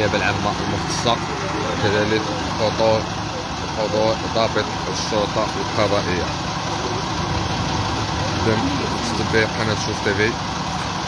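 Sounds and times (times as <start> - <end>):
fire truck engine idling: 0.0 - 11.0.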